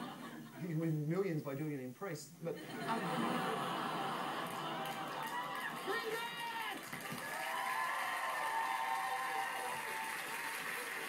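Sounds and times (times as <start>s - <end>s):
studio audience laughing: 0.0s - 0.6s, 2.6s - 6.2s
audience applauding: 3.3s - 11.0s.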